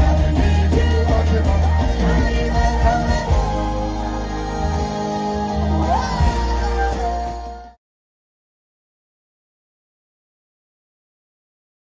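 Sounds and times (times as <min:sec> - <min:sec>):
live band music with heavy bass: 0:00.0 - 0:07.8.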